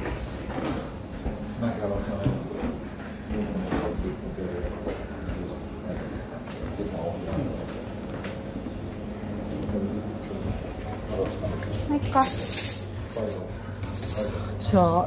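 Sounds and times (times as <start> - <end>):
people talking in background: 0.0 - 15.0.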